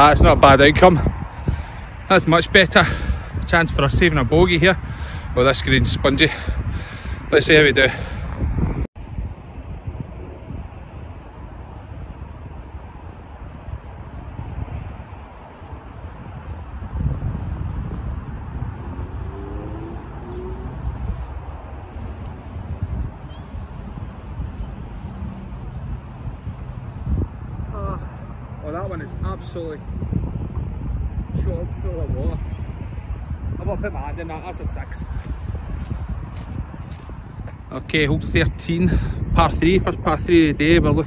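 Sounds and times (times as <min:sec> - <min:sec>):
wind on microphone: 0:00.0 - 0:41.0.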